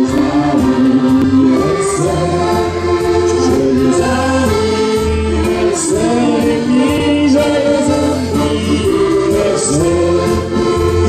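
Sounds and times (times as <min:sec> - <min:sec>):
accordions playing: 0:00.0 - 0:11.0
electric guitar: 0:00.0 - 0:11.0
low bass line: 0:00.0 - 0:11.0.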